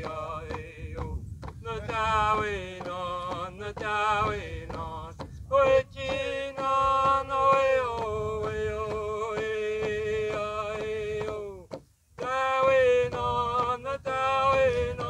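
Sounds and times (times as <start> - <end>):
hand drum beating: 0.0 - 15.0
men singing a chant: 0.0 - 15.0.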